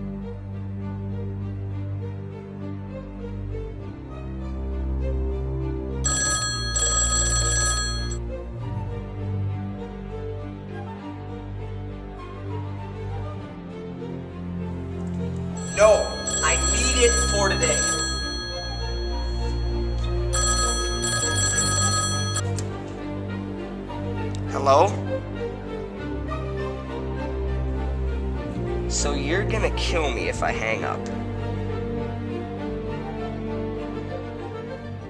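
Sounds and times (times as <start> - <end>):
background music with deep drone: 0.0 - 6.1, 8.2 - 15.6, 22.5 - 35.0
telephone ringing: 6.1 - 8.2, 15.5 - 22.8.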